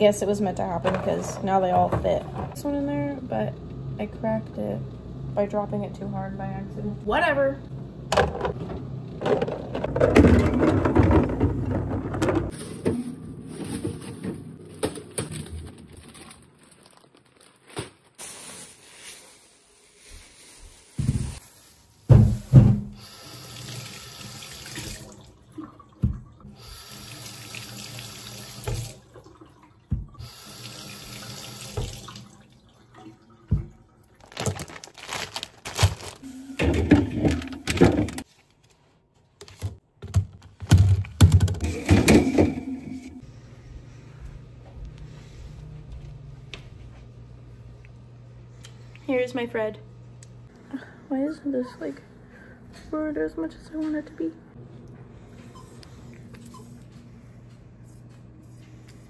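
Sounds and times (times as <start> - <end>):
knocks and clatters of handling: 0.8 - 2.6, 39.4 - 42.6
faucet running into a steel sink: 23.0 - 25.2, 26.6 - 29.0, 30.2 - 32.4.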